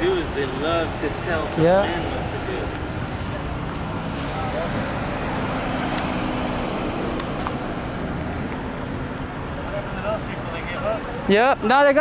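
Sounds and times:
tyre and road noise: 0.0 - 12.0.

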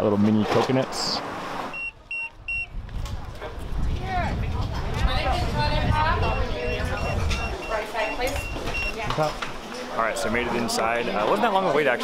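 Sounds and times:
crowd chatter: 2.0 - 12.0.

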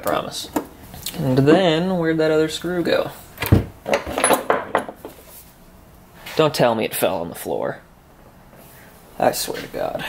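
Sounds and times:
tools clinking on wooden workbench: 3.9 - 5.1.

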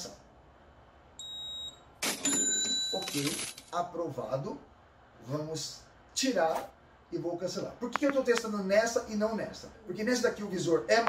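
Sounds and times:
card terminal beep: 1.2 - 3.3.

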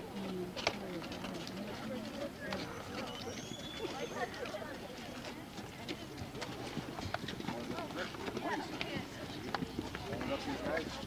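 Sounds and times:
children chattering: 0.0 - 11.0
footsteps on concrete steps: 0.2 - 11.0.

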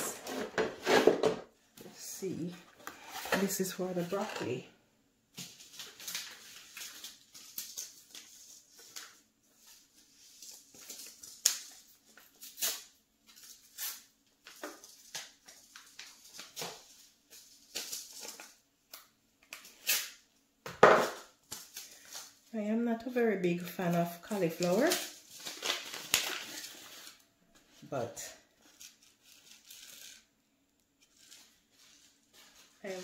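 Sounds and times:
plastic and paper rustling: 2.7 - 4.6, 5.4 - 18.6, 23.8 - 30.3, 31.0 - 33.0.

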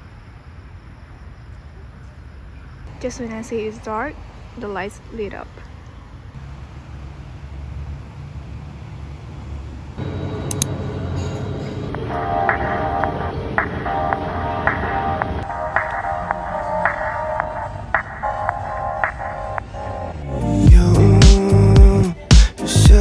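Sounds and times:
music beat: 10.0 - 23.0.

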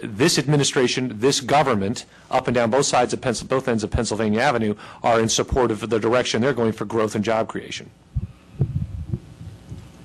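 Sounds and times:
low hum: 8.1 - 10.0
low dull thumps: 8.2 - 10.0.

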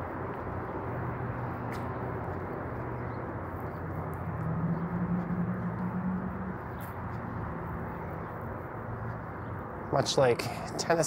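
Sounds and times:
city traffic noise: 0.0 - 11.0
vehicle engine hum passing: 0.0 - 11.0.

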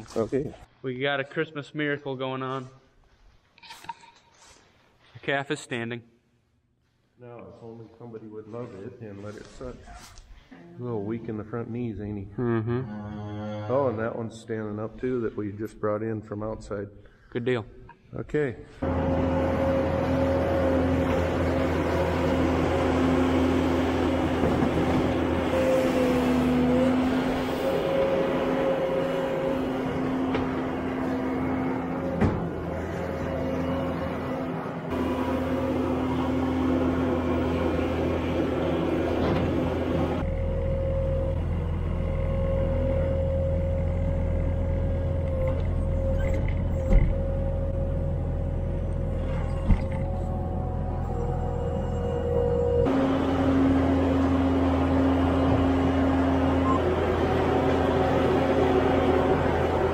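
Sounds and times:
diesel loader engine running: 18.8 - 59.9
steady engine whine: 18.8 - 59.9.

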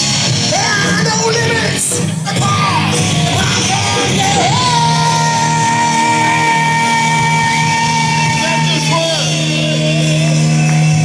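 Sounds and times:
rock band playing: 0.0 - 11.0
man singing and yelling: 0.4 - 11.0.

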